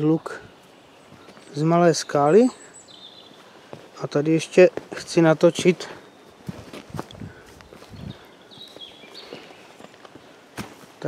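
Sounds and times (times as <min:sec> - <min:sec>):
soft footsteps on rock: 0:00.6 - 0:01.6, 0:03.1 - 0:11.0.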